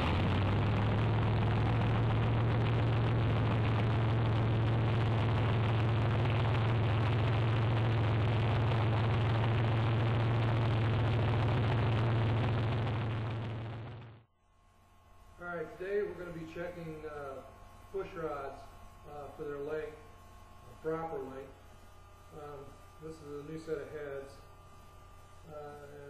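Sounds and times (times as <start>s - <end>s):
loud steady engine noise: 0.0s - 14.3s.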